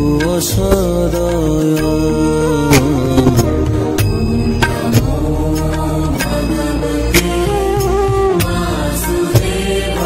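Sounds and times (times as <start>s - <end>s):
chanted melody: 0.0s - 10.0s
sharp percussive strikes: 0.0s - 10.0s.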